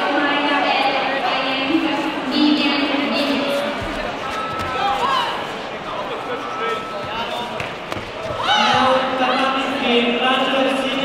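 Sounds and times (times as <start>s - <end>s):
people shouting in a hall: 4.4s - 5.6s, 8.2s - 9.4s.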